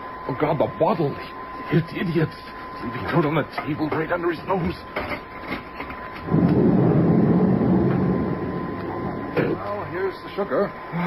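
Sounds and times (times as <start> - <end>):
low rumbling rush: 6.2 - 10.0.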